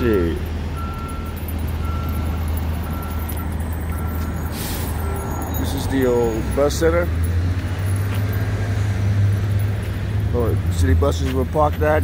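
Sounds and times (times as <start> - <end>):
faint street noise: 0.0 - 12.0
vehicle engine running: 0.0 - 12.0.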